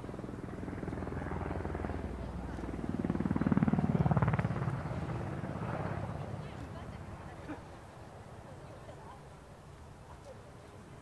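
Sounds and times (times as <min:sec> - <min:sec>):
helicopter rotor chopping: 0:00.0 - 0:09.3.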